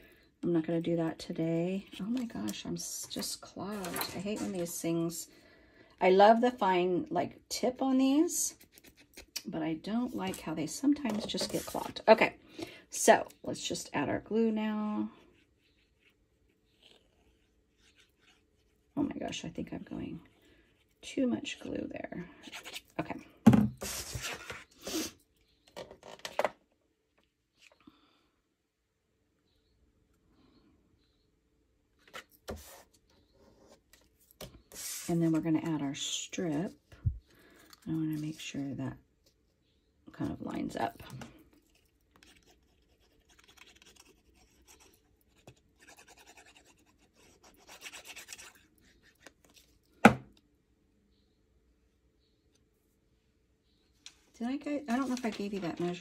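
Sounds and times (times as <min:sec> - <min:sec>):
paper rustling and rubbing: 0:11.1 - 0:12.0, 0:33.6 - 0:35.4.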